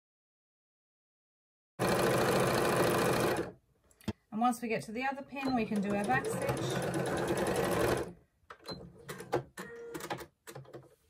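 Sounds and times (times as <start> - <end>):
sewing machine running: 1.8 - 3.6, 5.6 - 8.1.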